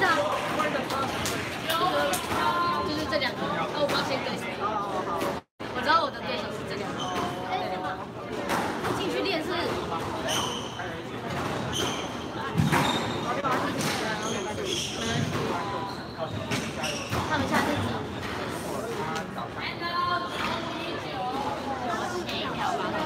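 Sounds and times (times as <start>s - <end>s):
voices chattering: 0.0s - 23.0s
shoes squeaking on wooden floor: 10.2s - 10.8s, 11.5s - 17.8s.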